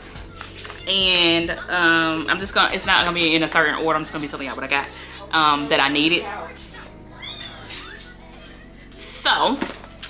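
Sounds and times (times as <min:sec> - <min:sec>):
soft background music: 0:00.0 - 0:10.0
cat meowing: 0:07.1 - 0:08.0.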